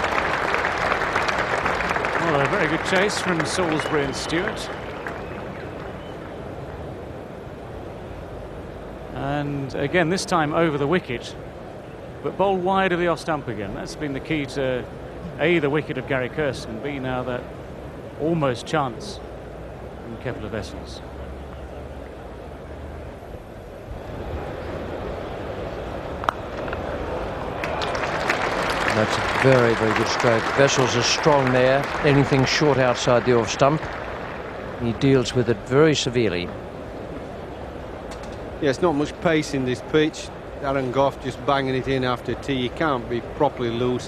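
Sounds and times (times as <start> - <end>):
crowd applause: 0.0 - 6.2, 26.6 - 36.4
cricket ground ambience rumble: 1.6 - 30.7
crowd murmur: 24.2 - 38.1.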